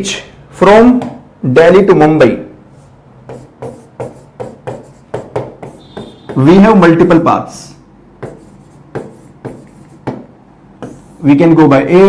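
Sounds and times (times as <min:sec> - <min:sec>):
chalk writing on a blackboard: 0:02.7 - 0:06.4, 0:08.2 - 0:11.3.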